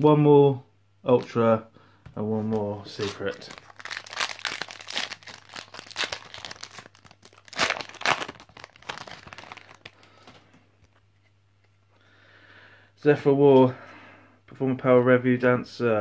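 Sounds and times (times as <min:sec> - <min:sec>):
foil wrapper tearing and crinkling: 0:02.9 - 0:10.2.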